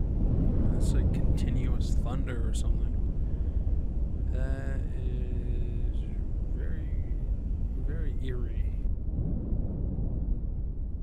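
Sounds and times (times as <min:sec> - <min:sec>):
explosion blast rumble: 0:00.0 - 0:11.0.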